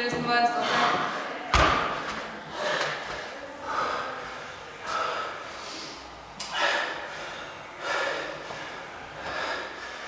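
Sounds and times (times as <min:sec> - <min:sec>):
heavy gasping breaths: 0:00.6 - 0:01.4, 0:02.4 - 0:10.0.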